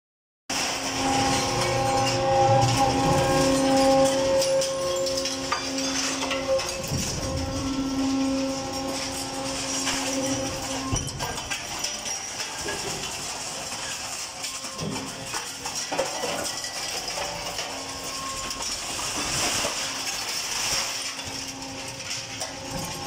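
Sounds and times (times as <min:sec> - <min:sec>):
scrap metal rattling: 0:00.5 - 0:23.0
conveyor machine hum: 0:00.6 - 0:19.4.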